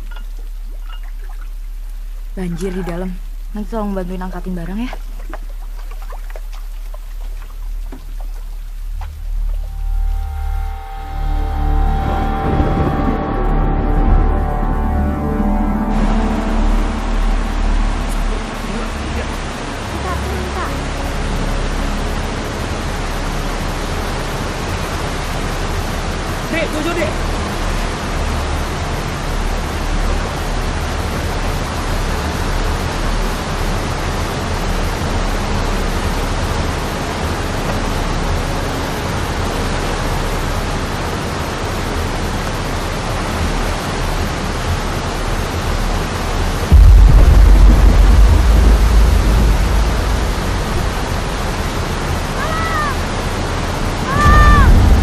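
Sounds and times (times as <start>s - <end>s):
heavy rain hissing: 6.5s - 55.0s
loud deep rumble: 8.2s - 26.3s, 43.2s - 55.0s.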